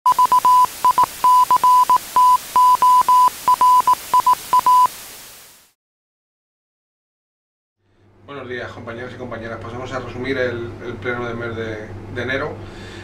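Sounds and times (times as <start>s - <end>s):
morse code style beeps: 0.1s - 4.9s
television static hiss: 0.1s - 5.8s.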